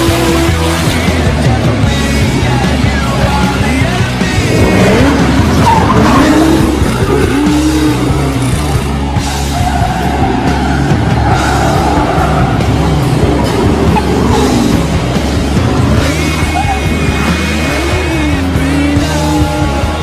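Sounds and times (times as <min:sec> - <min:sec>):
background music: 0:00.0 - 0:20.0
car engine revving: 0:00.0 - 0:20.0
tyres skidding on pavement: 0:00.0 - 0:20.0.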